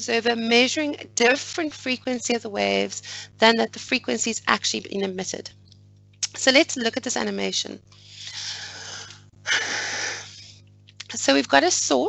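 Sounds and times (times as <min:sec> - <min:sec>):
person breathing close to microphone: 0:07.9 - 0:10.6.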